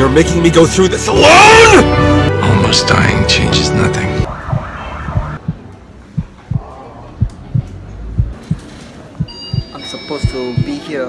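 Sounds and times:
faint low drone: 0:04.2 - 0:05.7
heartbeat thumps: 0:04.3 - 0:10.8.

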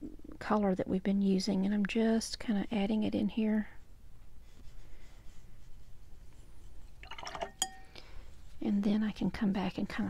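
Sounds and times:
brush swished in water: 0:06.6 - 0:07.8
brush clinking against container: 0:07.0 - 0:08.0.

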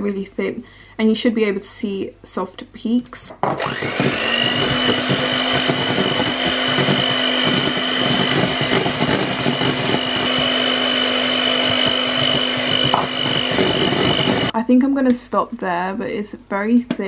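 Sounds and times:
electric hand mixer whisking cream: 0:03.5 - 0:14.5.

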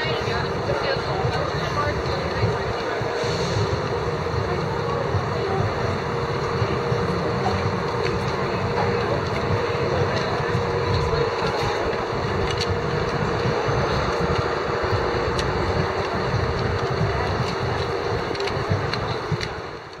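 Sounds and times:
murmur of voices: 0:00.0 - 0:20.0
traffic noise: 0:00.0 - 0:20.0
wind rumbling on microphone: 0:00.0 - 0:20.0.

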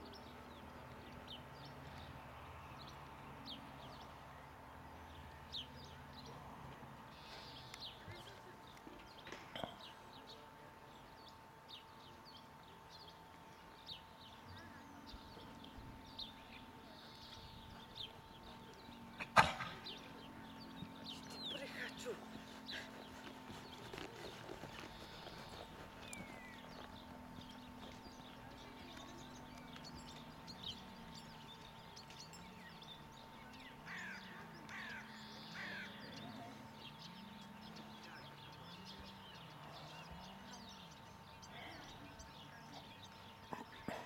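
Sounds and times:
faint wavering low hum: 0:00.0 - 0:44.0
small birds calling: 0:07.1 - 0:44.0
crows cawing: 0:33.9 - 0:36.0.

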